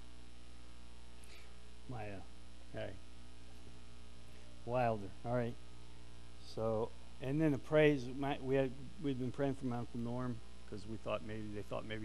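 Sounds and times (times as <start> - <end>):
low electrical mains hum: 0.0 - 12.0
person speaking: 1.9 - 3.0, 4.6 - 5.6.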